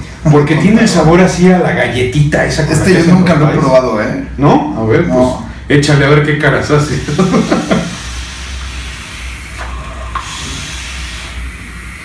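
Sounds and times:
vape hissing: 6.9s - 12.0s.

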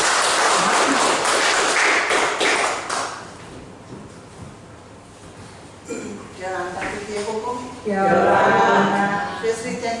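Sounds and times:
audience applauding: 0.0s - 3.3s.

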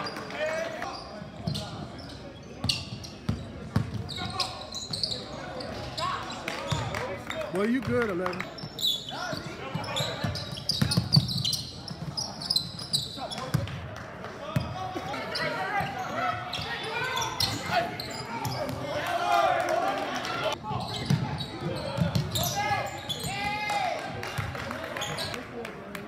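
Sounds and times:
voices echoing in gym: 0.0s - 26.0s.

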